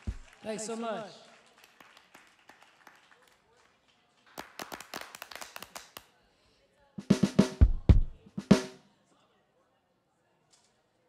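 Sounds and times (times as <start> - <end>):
small audience clapping: 0.0 - 6.2.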